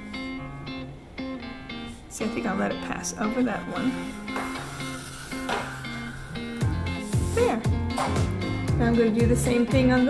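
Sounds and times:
guitar-led music: 0.0 - 10.0.

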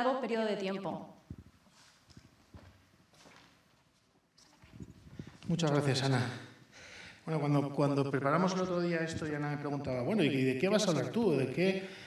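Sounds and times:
microphone handling noise: 1.3 - 2.3, 4.5 - 5.6, 9.0 - 9.5
footsteps on wooden stage: 1.3 - 5.5.

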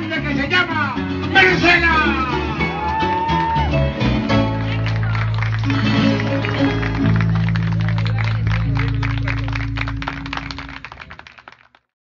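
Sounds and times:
audience clapping: 2.6 - 12.0.

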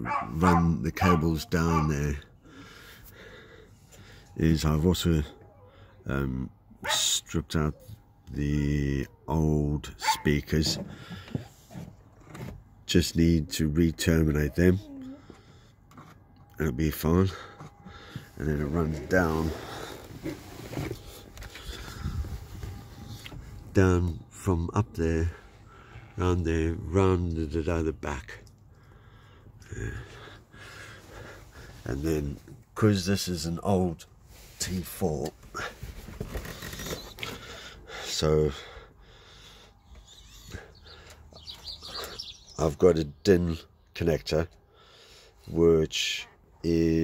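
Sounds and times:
faint birds chirping: 0.0 - 10.2, 35.4 - 45.5.

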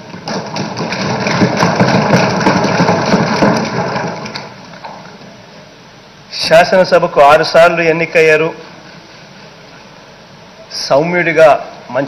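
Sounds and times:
people thumping on desks: 0.0 - 5.0.

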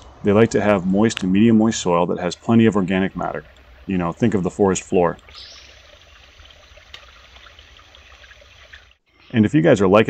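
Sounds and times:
creek flowing: 0.0 - 9.0.

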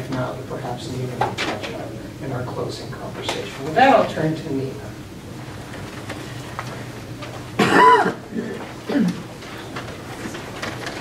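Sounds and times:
person speaking: 0.0 - 5.0
person coughing: 7.6 - 9.3
faint clicks and knocks: 8.6 - 11.0.

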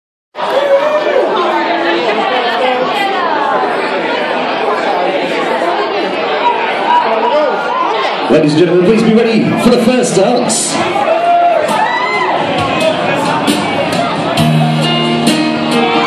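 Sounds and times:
crowd chatter: 0.4 - 16.0.

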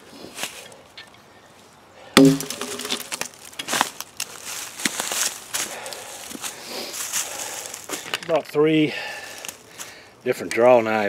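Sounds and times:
heavy thump: 2.2 - 3.1.

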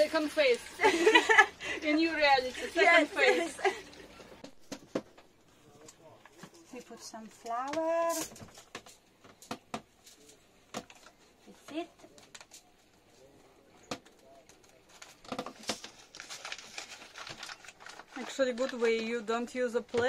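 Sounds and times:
paper bag and foil rustling: 14.2 - 20.0.

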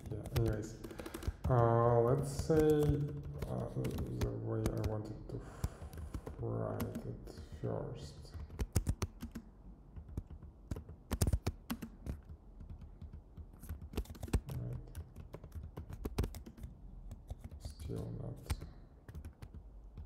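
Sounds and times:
typing on computer keyboard: 0.0 - 20.0.

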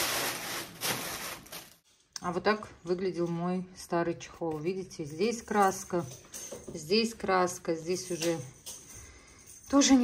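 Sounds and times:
packing paper rustling: 0.0 - 1.9.

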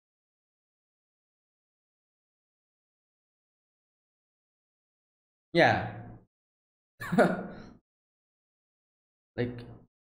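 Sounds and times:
man laughing breathily: 7.0 - 7.8.

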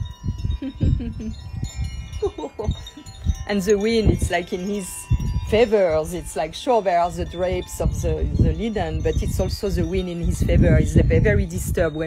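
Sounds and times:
wind chimes ringing: 0.0 - 12.0
wind rumbling on microphone: 0.0 - 12.0.

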